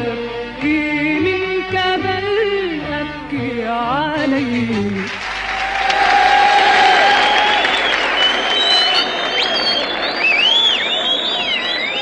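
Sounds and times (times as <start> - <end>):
person singing: 0.0 - 5.2
audience applauding and cheering: 4.9 - 12.0.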